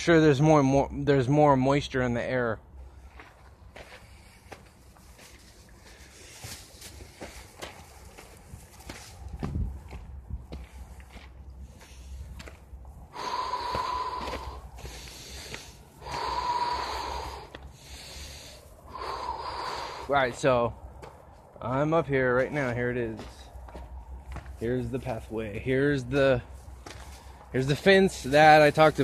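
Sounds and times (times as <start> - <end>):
man breathing hard: 2.7 - 8.4, 10.7 - 20.9, 26.6 - 27.5
faint clicks and scuffs: 3.1 - 13.0, 22.3 - 29.0.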